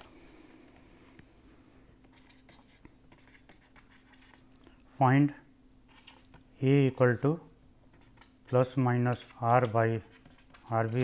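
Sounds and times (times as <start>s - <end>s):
stylus scratching on pen tablet: 2.1s - 4.4s, 5.9s - 6.4s, 7.9s - 11.0s.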